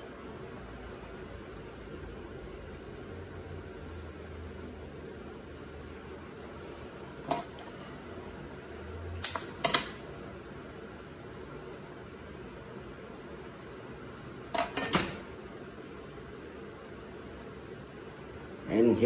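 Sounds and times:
steady low hiss: 0:00.0 - 0:19.0
plates and utensils clicking: 0:09.2 - 0:10.0, 0:14.5 - 0:15.2.

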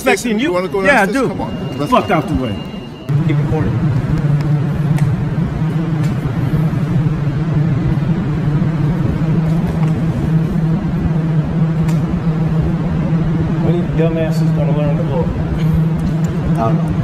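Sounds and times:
loud low-pitched machinery hum: 0:00.0 - 0:17.0
rumbling noise: 0:00.0 - 0:17.0.

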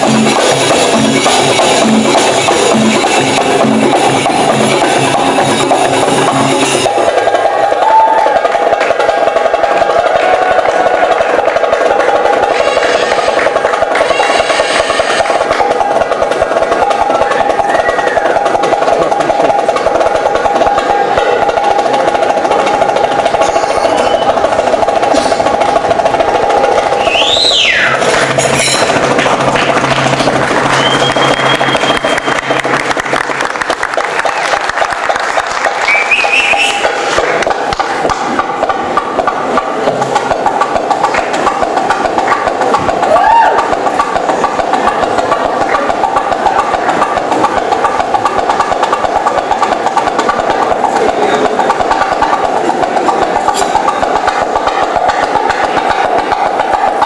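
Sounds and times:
fast hand drumming: 0:00.0 - 0:57.0.

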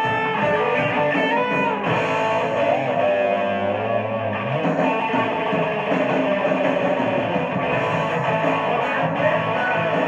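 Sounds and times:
electric guitar fast notes: 0:00.0 - 0:10.0.

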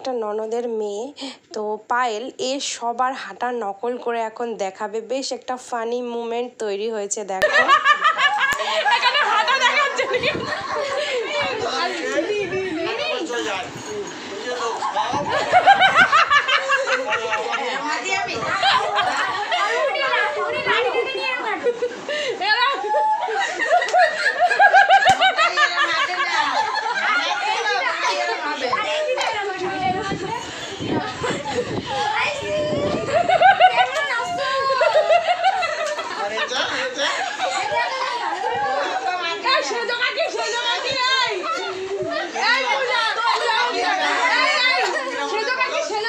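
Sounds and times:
group of people chattering: 0:00.0 - 0:46.0
women laughing: 0:07.4 - 0:12.8, 0:14.9 - 0:28.8, 0:29.8 - 0:45.8.

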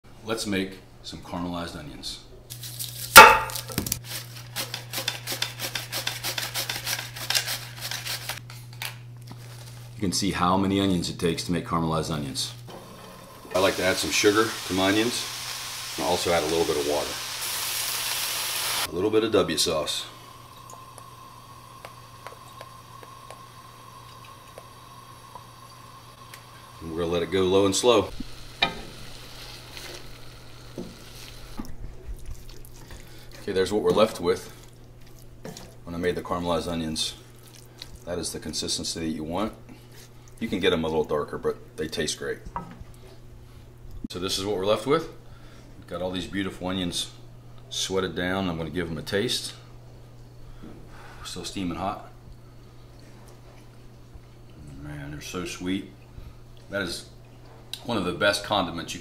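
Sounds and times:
onions sliced on mandoline: 0:02.8 - 0:08.4
sharp metal clink: 0:03.2 - 0:03.8
onions sizzling in a pan: 0:12.8 - 0:18.9, 0:27.7 - 0:31.6.

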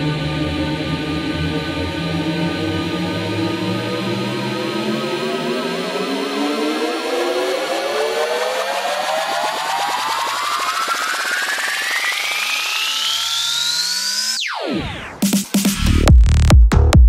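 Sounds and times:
trance music synth sweep rising: 0:00.0 - 0:16.5.

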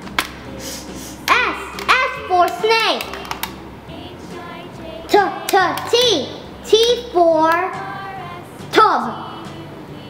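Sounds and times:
child's high voice: 0:01.3 - 0:03.1.

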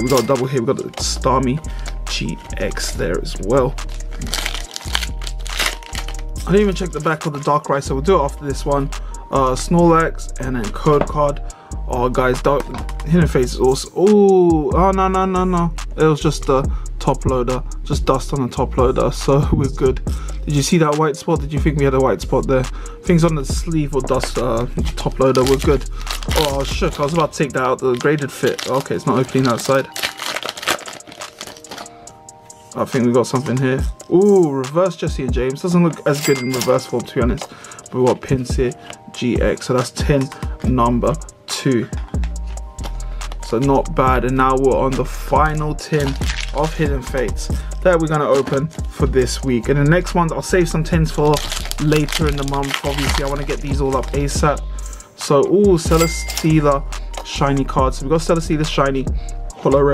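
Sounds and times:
background music: 0:00.0 - 0:59.9
foil wrapper crinkling: 0:03.8 - 0:06.5, 0:24.9 - 0:32.0, 0:45.9 - 0:46.7, 0:51.3 - 0:54.3.

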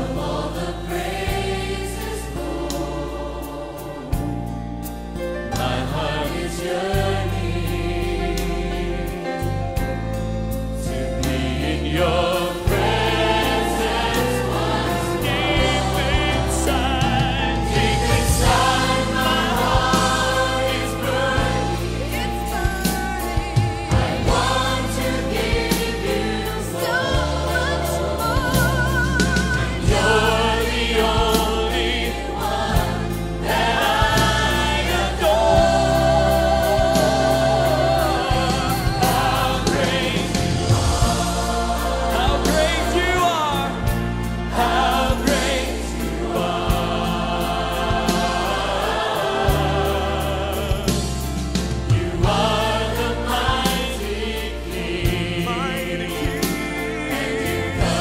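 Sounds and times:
choir singing gospel song: 0:00.0 - 0:58.0
steady bass line: 0:00.0 - 0:58.0.

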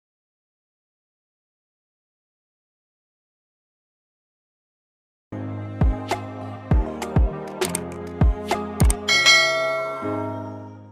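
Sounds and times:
bright bell chime: 0:09.1 - 0:10.4.

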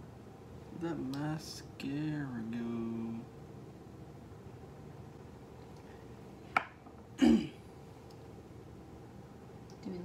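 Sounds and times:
low room hum: 0:00.0 - 0:10.0
person clearing throat: 0:07.2 - 0:07.6.

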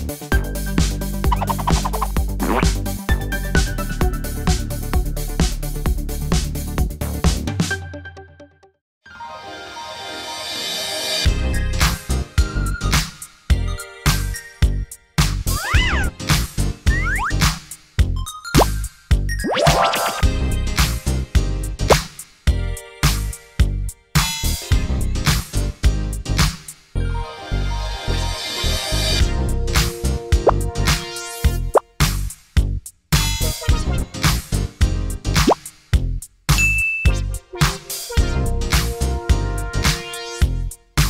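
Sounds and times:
upbeat background music: 0:00.0 - 0:08.6, 0:11.2 - 0:23.6, 0:28.1 - 0:32.3, 0:33.3 - 0:41.0
cartoon boing tones: 0:01.3 - 0:02.0.

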